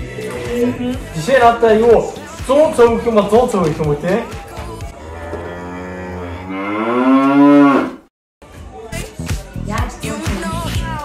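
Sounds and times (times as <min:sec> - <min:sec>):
cow mooing: 0:05.0 - 0:08.1.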